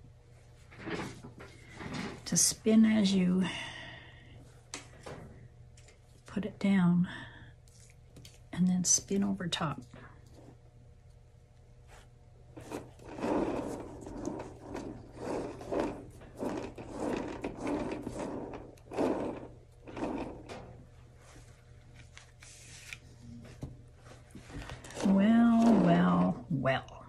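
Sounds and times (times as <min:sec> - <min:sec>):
soft rubbing strokes through paint: 0:21.0 - 0:25.9.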